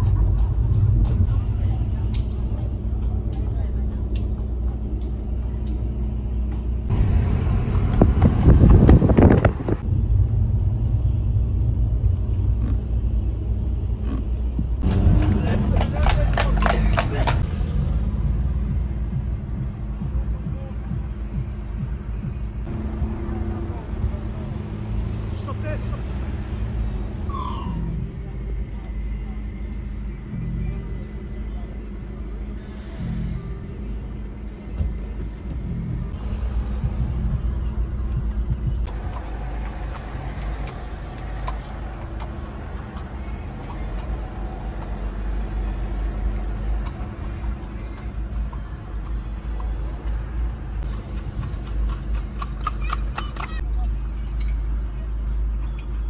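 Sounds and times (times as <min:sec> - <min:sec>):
car cabin engine and road rumble: 0:00.0 - 0:56.0
muffled talk: 0:01.2 - 0:04.6
background music: 0:14.6 - 0:25.2.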